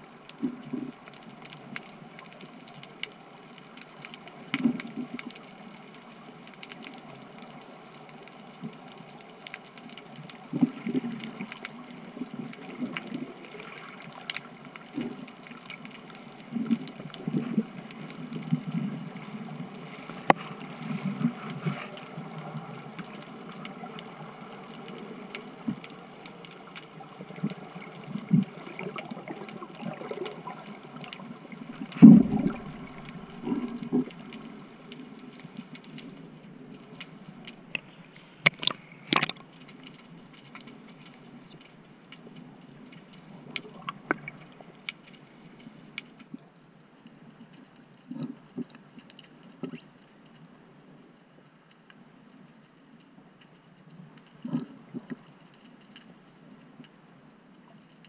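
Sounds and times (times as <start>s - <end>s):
muffled underwater hiss: 0.0s - 58.0s
low underwater whooshes: 28.4s - 38.2s.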